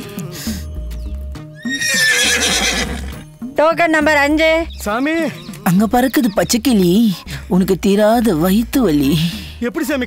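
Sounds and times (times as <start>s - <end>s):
background music with low beat: 0.0s - 2.0s, 3.0s - 10.0s
horse whinny: 1.6s - 3.2s.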